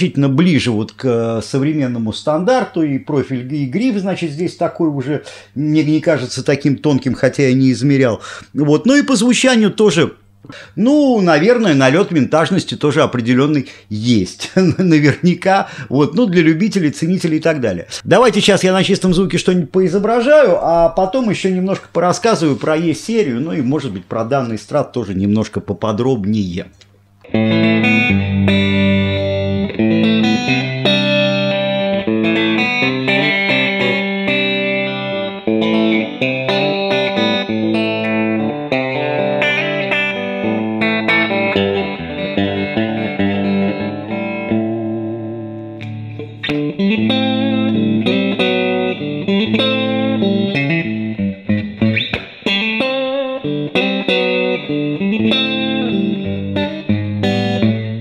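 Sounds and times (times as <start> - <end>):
clean electric guitar playing: 27.2 - 58.0.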